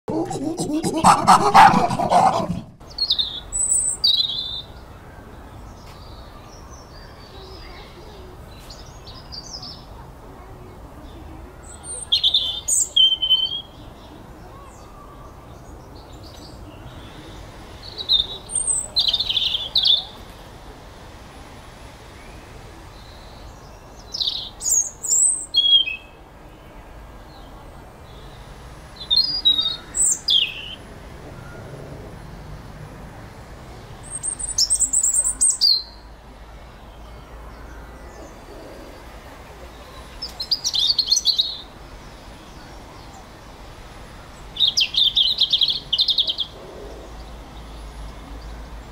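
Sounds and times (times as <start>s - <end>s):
small bird singing: 44.4s - 47.7s.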